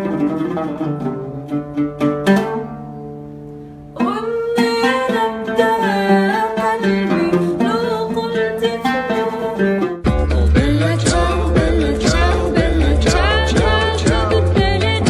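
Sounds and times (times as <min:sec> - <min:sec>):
oud plucked: 0:00.0 - 0:15.0
song with heavy bass beat: 0:10.0 - 0:15.0.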